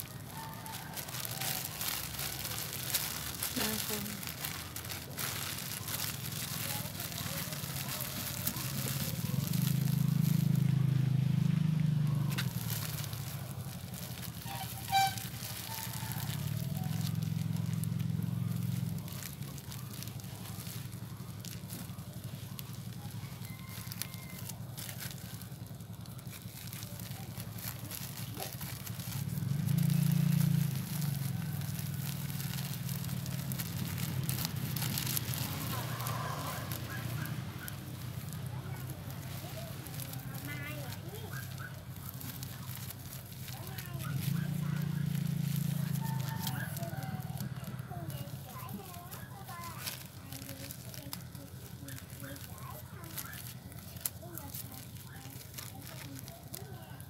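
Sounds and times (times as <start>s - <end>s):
plastic bag crinkling: 0.0s - 57.0s.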